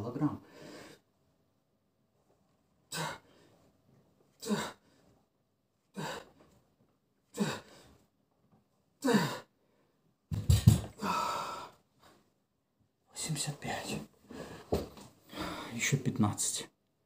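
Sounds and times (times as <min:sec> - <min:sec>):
man grunting: 0:02.9 - 0:03.2, 0:04.4 - 0:04.8, 0:09.0 - 0:09.5
heavy breathing: 0:04.4 - 0:05.1, 0:05.9 - 0:06.4, 0:07.3 - 0:08.0, 0:10.6 - 0:11.8, 0:13.9 - 0:15.8.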